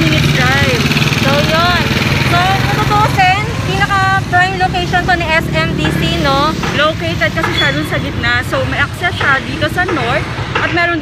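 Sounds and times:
street traffic: 0.0 - 11.0
vehicle engine humming: 0.0 - 11.0
woman talking: 0.0 - 11.0.

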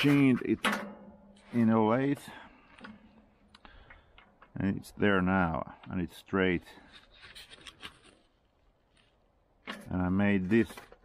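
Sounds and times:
light handling clicks and rubs: 6.8 - 9.9.

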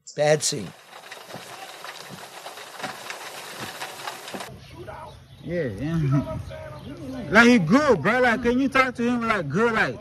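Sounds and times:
hissing rustling noise: 0.2 - 4.5.

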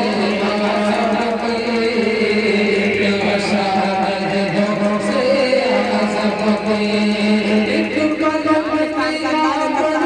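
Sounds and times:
man chanting into a microphone: 0.0 - 10.0
steady low drone: 0.0 - 10.0.

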